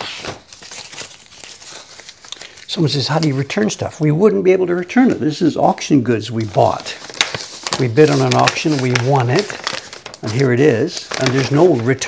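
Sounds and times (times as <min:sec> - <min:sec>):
paper envelope crinkling: 0:00.0 - 0:03.9, 0:05.7 - 0:12.0
man speaking: 0:02.7 - 0:07.1, 0:07.8 - 0:09.6, 0:10.2 - 0:12.0.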